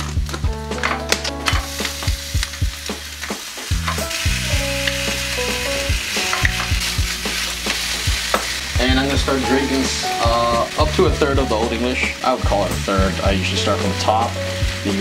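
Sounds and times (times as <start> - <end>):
ham sizzling in a frying pan: 0.0 - 15.0.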